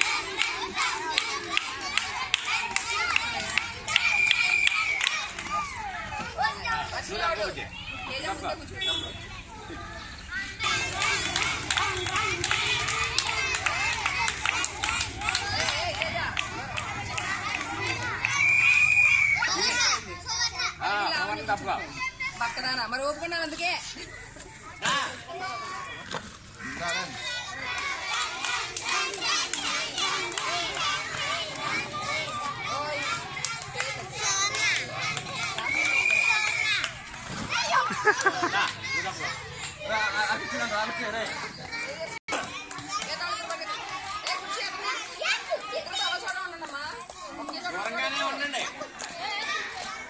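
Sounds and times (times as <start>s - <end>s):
hand claps: 0.0s - 5.8s, 10.6s - 18.9s, 27.7s - 32.5s, 33.2s - 37.3s, 46.0s - 49.2s
children shouting and calling: 0.0s - 50.0s.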